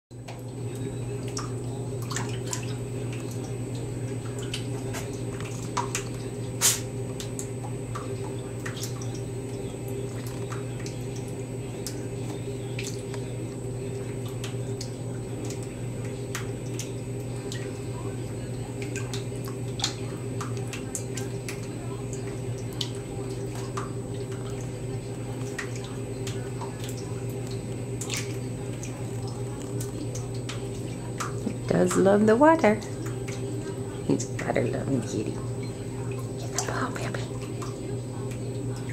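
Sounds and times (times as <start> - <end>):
steady low hum: 0.1 - 38.9
cat splashing in bathwater: 0.2 - 38.9
water drips: 0.2 - 38.9.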